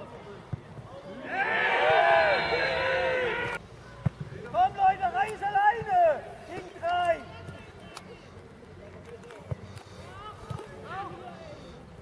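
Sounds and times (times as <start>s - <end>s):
people shouting outdoors: 1.1s - 3.6s.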